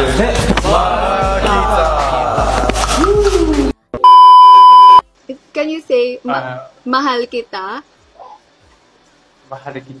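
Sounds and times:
electronic censor beep: 4.0s - 5.0s.

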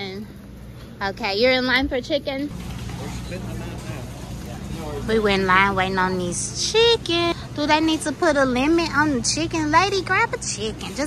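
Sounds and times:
low store hum: 0.0s - 11.0s
faint shopper voices: 2.6s - 11.0s.

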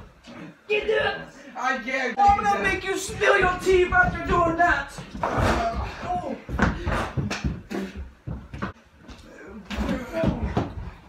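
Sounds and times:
people scuffling and talking: 0.1s - 8.2s, 9.0s - 11.0s
sharp knocks and thumps: 2.2s - 8.8s.

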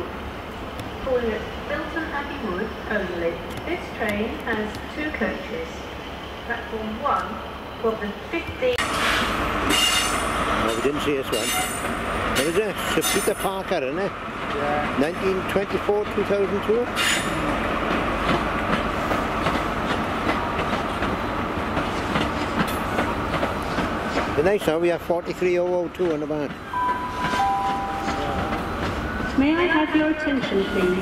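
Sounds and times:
diesel train engine whine: 0.0s - 24.4s, 26.6s - 31.0s
train wheels clicking over rail joints: 8.5s - 13.6s, 14.4s - 27.4s.

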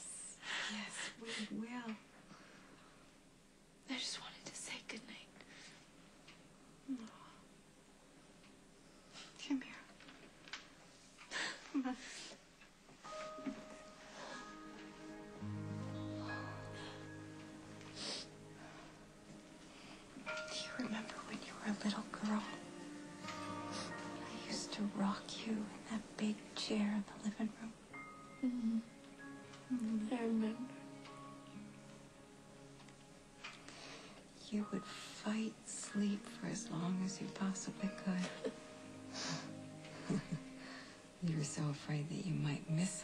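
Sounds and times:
woman's whispered breath: 0.0s - 1.6s
woman sobbing: 38.2s - 41.0s.

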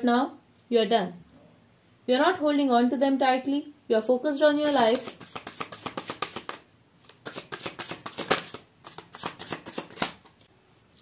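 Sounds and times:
cards being shuffled: 4.6s - 10.4s.

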